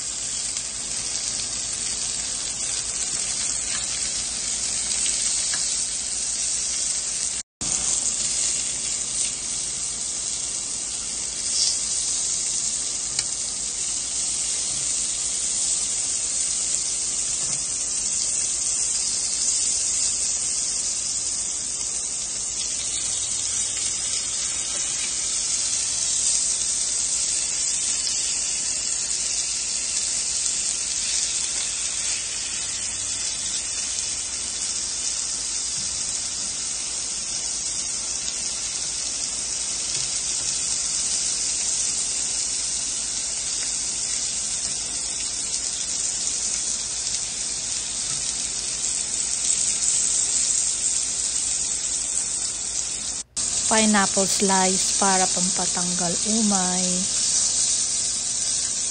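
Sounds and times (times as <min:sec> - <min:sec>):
food sizzling on grill plate: 0:00.0 - 0:58.9.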